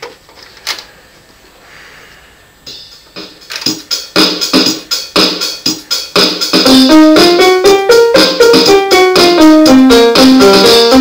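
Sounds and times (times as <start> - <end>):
electronic keyboard pitched hits: 6.5 - 11.0.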